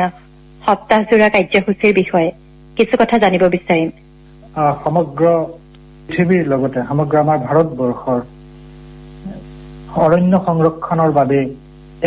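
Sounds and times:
person talking: 0.0 - 8.3, 9.2 - 11.6
electrical mains hum: 0.0 - 12.0.

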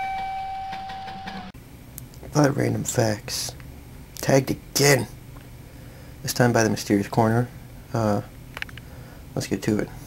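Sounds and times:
guitar note ringing: 0.0 - 1.5.

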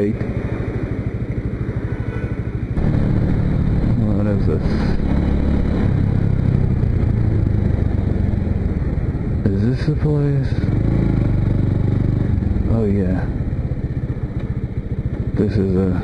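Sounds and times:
motorcycle engine: 0.0 - 16.0.

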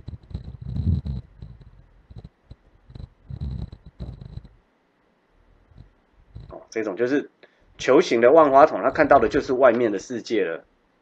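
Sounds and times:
handling noise on microphone: 0.0 - 4.6.

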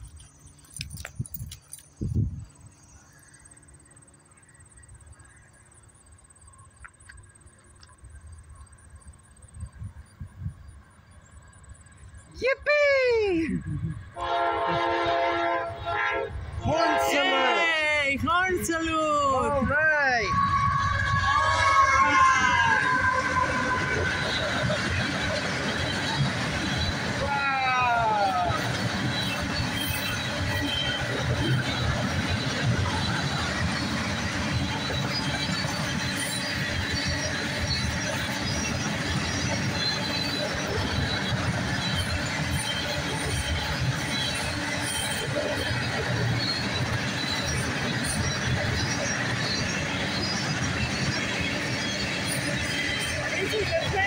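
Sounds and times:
high wheel squeal: 19.4 - 54.0
freight train wheels clattering: 20.3 - 54.0.

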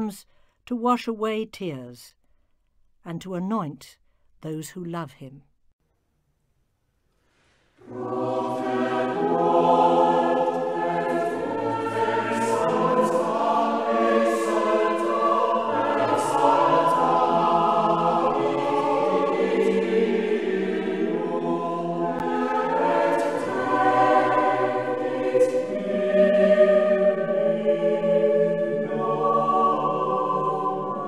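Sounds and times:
choir singing sustained chords: 7.8 - 31.0.

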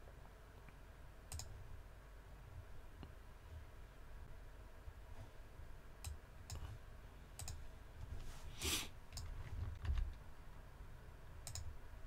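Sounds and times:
faint low hum: 0.0 - 12.0
sharp computer clicks: 1.3 - 1.6, 7.4 - 7.6, 11.4 - 11.8.

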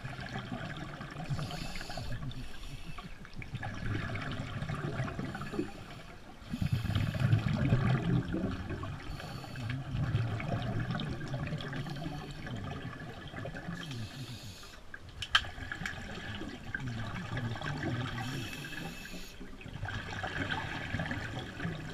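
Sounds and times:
underwater bubbles gurgling: 0.0 - 21.9.

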